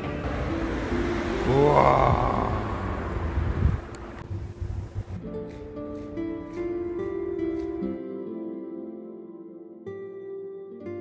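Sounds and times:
plucked-string background music: 0.0 - 2.5, 3.9 - 11.0
rising swoosh: 0.2 - 5.2
noisy rumble: 1.5 - 5.2.

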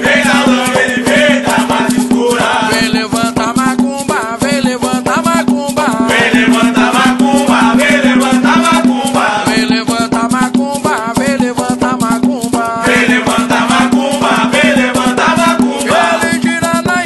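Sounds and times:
fast hand percussion: 0.0 - 17.0
voices singing: 0.0 - 17.0
rattle: 0.3 - 7.5, 8.2 - 17.0.

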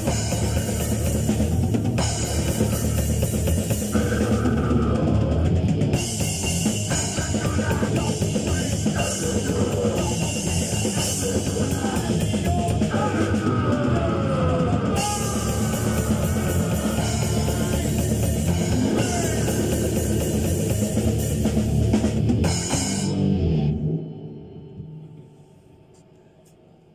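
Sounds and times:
rock band jamming: 0.0 - 24.4.

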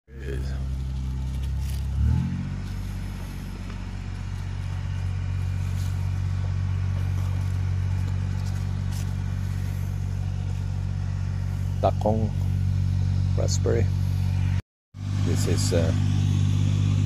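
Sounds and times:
motor humming: 0.2 - 17.0.

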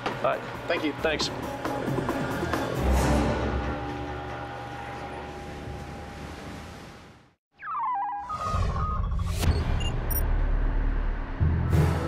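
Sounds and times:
low sustained music drone: 2.3 - 6.6.

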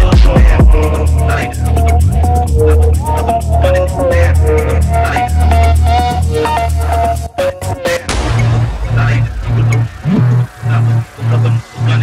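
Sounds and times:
distorted bass phonk music: 0.0 - 7.2, 8.1 - 12.0.

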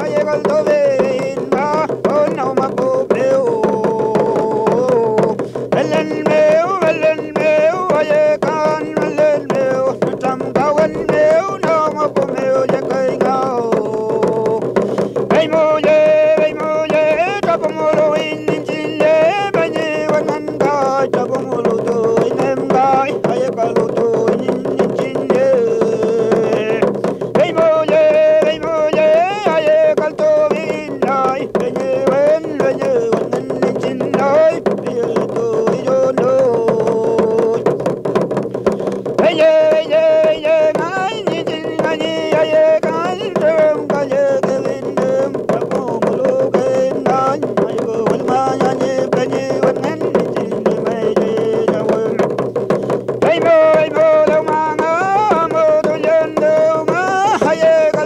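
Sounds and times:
person singing with wavering pitch: 0.0 - 14.7, 15.3 - 37.8, 39.2 - 52.3, 53.2 - 58.0
hand drum beat: 0.0 - 58.0.

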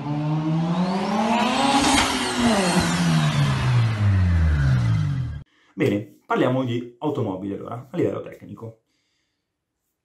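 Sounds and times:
car engine revving past: 0.0 - 5.4.

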